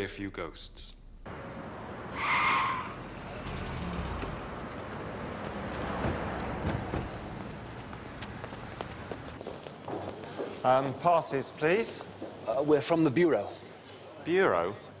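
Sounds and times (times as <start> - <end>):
car driving past: 1.2 - 8.6.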